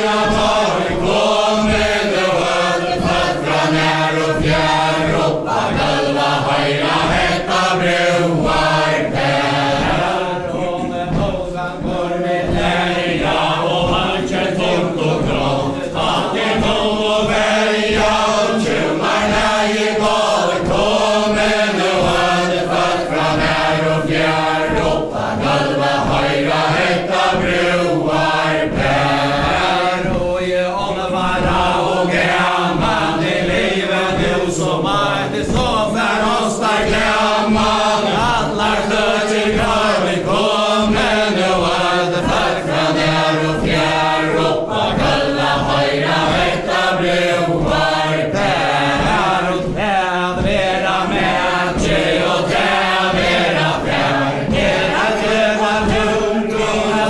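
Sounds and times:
feet treading on wooden floor: 0.0s - 57.0s
group singing without instruments: 0.0s - 57.0s.

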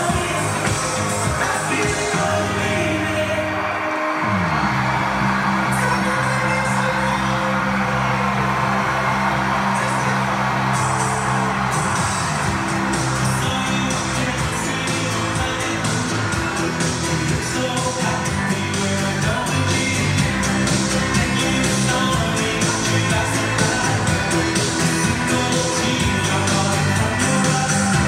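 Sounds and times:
pop music with male vocal: 0.0s - 28.0s.

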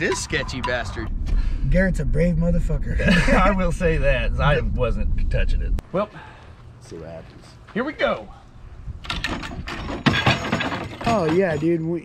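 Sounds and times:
clatter of wood and metal: 9.0s - 12.0s.

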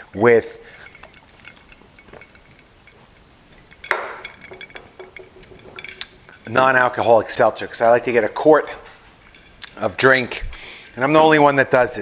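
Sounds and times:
jar clicks and clinks: 0.7s - 11.1s.

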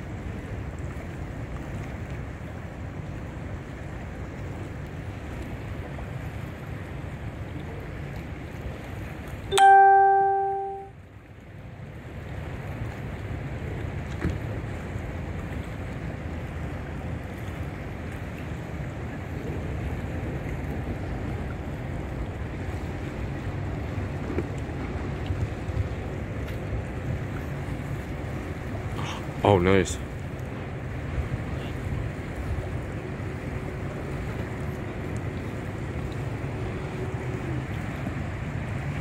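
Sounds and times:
ship horn blast: 9.5s - 10.9s.

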